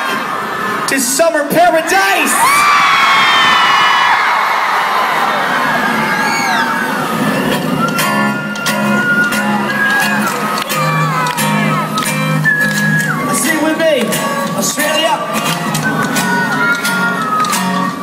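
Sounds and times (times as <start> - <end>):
crowd screaming and cheering: 0.0 - 18.0.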